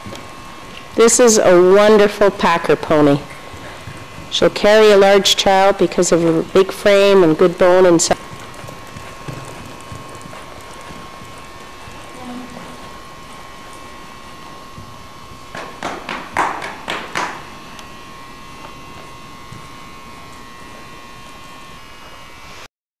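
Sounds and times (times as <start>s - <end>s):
faint high whine: 0.0s - 15.9s
pony hoofbeats on sand: 0.0s - 17.6s.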